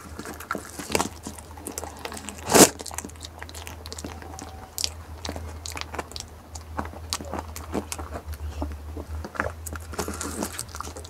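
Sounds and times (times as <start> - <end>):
goat chewing with wet crunches: 0.0 - 11.0.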